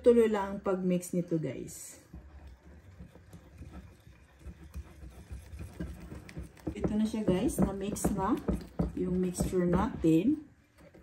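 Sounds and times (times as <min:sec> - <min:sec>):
whisk beating batter in glass bowl: 0:01.8 - 0:11.0.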